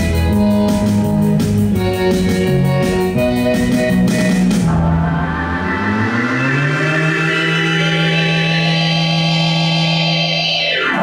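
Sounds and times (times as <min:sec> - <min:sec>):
synthesizer low buzzy note: 0:00.0 - 0:11.0.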